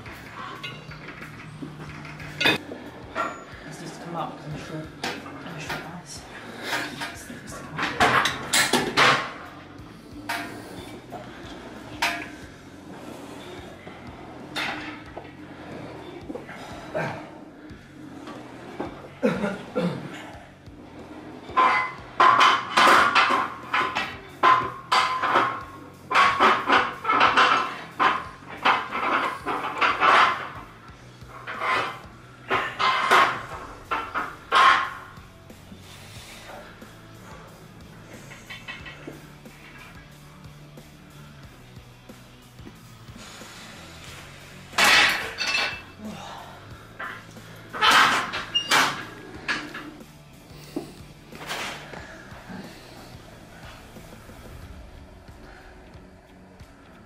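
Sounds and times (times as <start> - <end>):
background music: 0.0 - 57.0.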